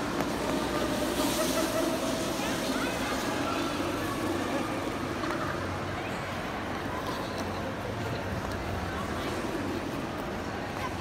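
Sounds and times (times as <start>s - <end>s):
scattered voices: 0.0s - 11.0s.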